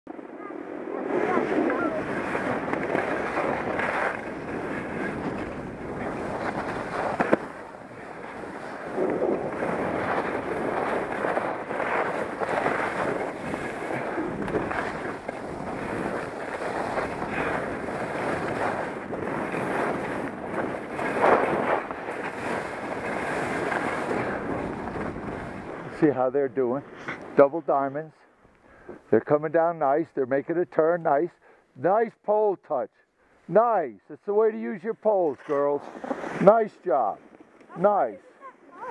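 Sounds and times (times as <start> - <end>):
wind buffeting microphone: 0.1 - 26.0
skis scraping over snow: 0.2 - 27.9, 33.4 - 38.9.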